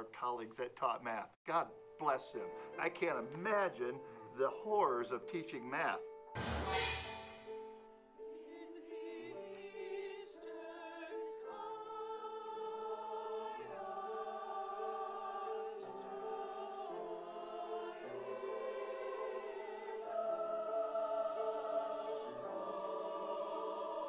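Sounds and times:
mixed choir singing: 0:08.2 - 0:24.0.

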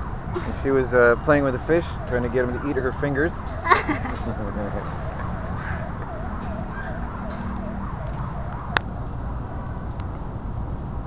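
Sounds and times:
distant siren yelping: 0:00.0 - 0:09.9
city traffic rumble: 0:00.0 - 0:11.0.

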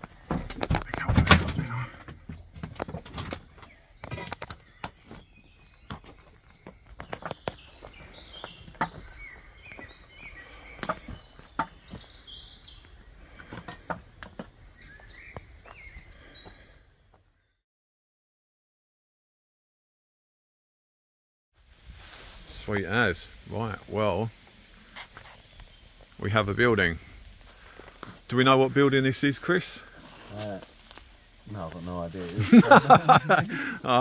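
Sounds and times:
footsteps on brick rubble: 0:00.0 - 0:12.3
small birds singing: 0:00.0 - 0:17.6, 0:22.4 - 0:34.0.

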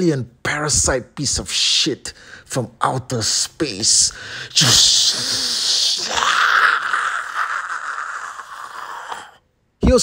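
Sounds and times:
man imitating flamethrower hiss: 0:04.4 - 0:09.4.

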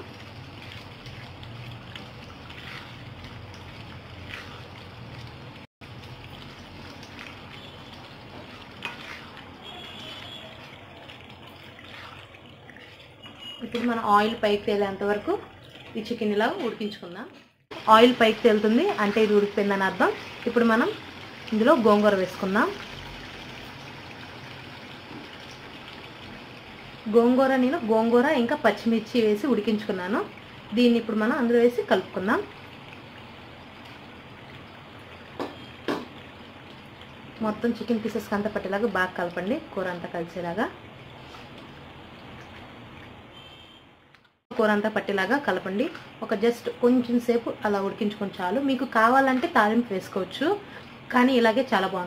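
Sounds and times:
curry sizzling in a pan: 0:00.0 - 0:17.0, 0:17.7 - 0:42.6
spatula scraping pan: 0:00.6 - 0:04.8, 0:08.3 - 0:10.8.

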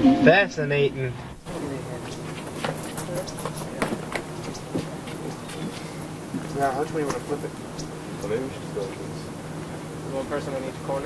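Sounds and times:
steady low hum: 0:00.0 - 0:11.0
faint voices: 0:00.2 - 0:11.0.

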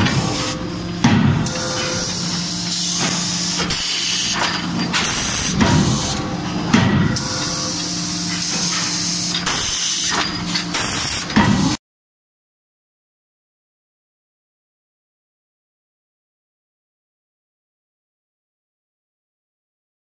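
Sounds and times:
air hissing: 0:01.4 - 0:06.3
low machine hum: 0:04.5 - 0:09.3.

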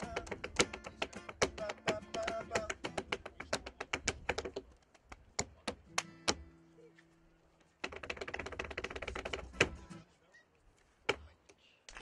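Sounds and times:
tap shoe stamp: 0:00.0 - 0:06.4
tap shoes tapping on board: 0:00.0 - 0:06.5, 0:07.8 - 0:09.9.

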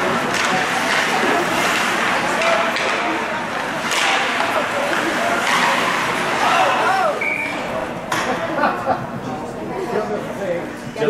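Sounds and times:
skates scraping on ice: 0:00.0 - 0:07.1
sharp crack: 0:03.8 - 0:06.4
people shouting: 0:06.2 - 0:07.2.

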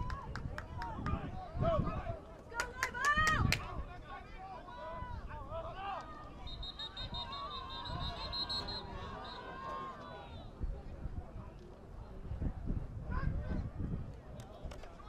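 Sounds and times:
people shouting: 0:05.7 - 0:10.4.

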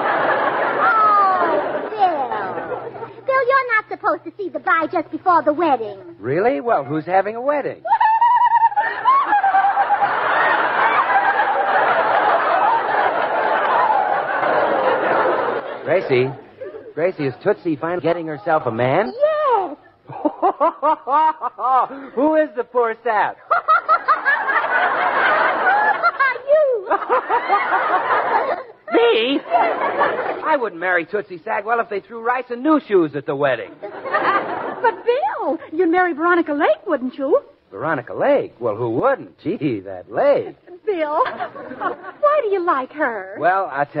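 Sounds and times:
audience laughing: 0:00.0 - 0:03.4, 0:07.9 - 0:17.2, 0:20.1 - 0:22.3, 0:23.4 - 0:30.6, 0:33.7 - 0:35.7, 0:40.2 - 0:42.7
woman laughing: 0:07.8 - 0:10.1, 0:19.1 - 0:22.2, 0:25.6 - 0:29.5.

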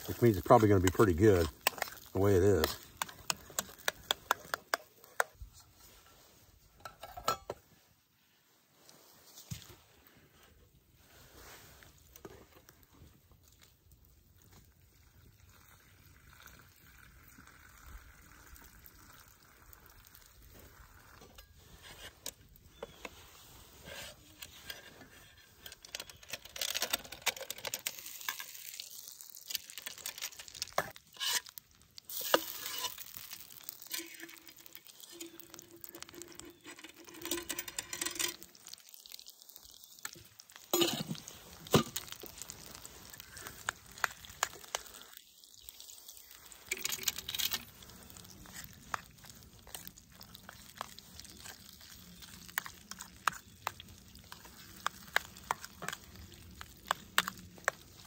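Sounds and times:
food sizzling in a skillet: 0:00.0 - 0:03.9, 0:27.9 - 0:58.0.

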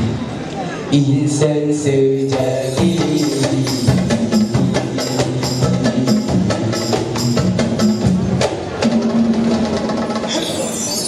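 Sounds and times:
male vocal group singing in harmony: 0:01.0 - 0:04.4
hand drums: 0:02.3 - 0:11.0.

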